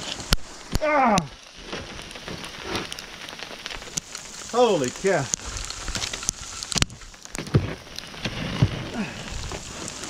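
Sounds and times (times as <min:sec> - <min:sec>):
sleet pellets pattering: 0:01.6 - 0:10.0.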